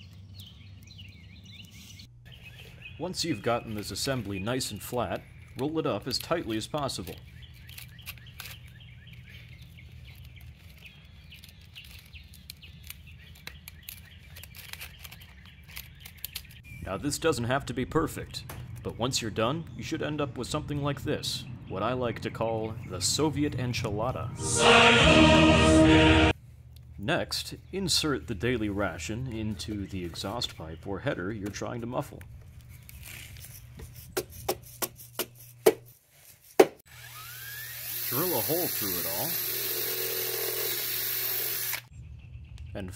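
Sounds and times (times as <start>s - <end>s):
cordless drill whirring: 36.9s - 41.9s.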